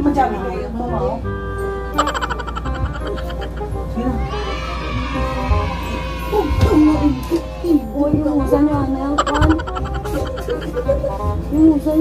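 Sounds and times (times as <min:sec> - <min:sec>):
background music: 0:00.0 - 0:12.0
shaky trilling call: 0:02.0 - 0:03.8.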